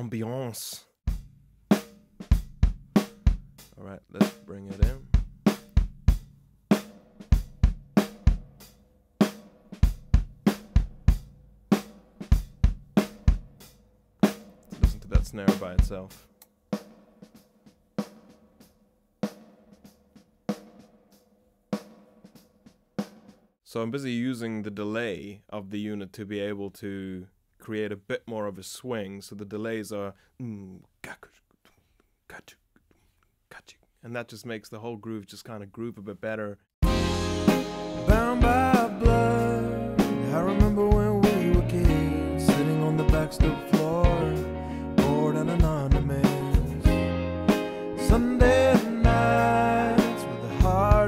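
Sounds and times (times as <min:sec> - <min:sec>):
drum kit groove: 0:01.0 - 0:23.5, 0:36.8 - 0:51.0
man making whispered mouth sounds: 0:30.8 - 0:34.0.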